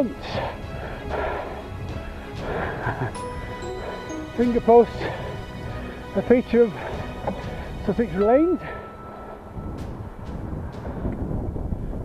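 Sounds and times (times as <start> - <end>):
wind buffeting microphone: 4.8 - 12.0.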